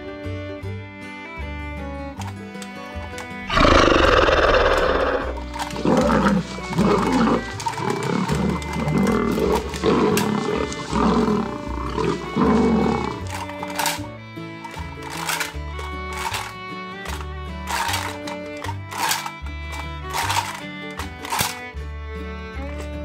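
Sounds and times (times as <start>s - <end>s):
background music: 0.0s - 23.0s
dinosaur roars: 3.5s - 13.6s.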